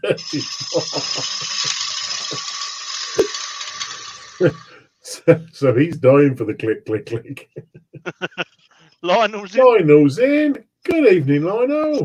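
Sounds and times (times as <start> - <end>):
gouge cutting spinning wood: 0.0 - 4.8.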